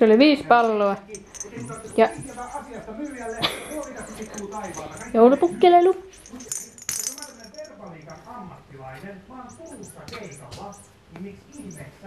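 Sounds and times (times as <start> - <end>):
jingle bell rattling: 1.0 - 8.4, 9.5 - 10.9.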